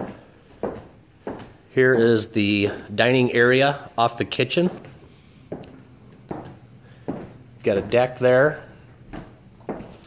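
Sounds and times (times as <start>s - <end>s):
soft footsteps indoors: 0.0s - 10.0s.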